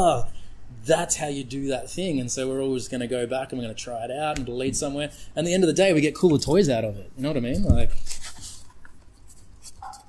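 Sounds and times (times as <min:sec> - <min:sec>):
picture frame rustling and scraping: 0:07.5 - 0:10.0.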